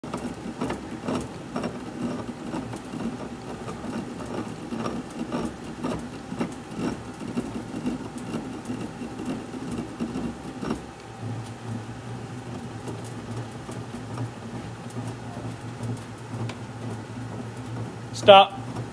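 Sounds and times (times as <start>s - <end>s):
clicks and creaks of bat rolling: 0.0s - 18.9s.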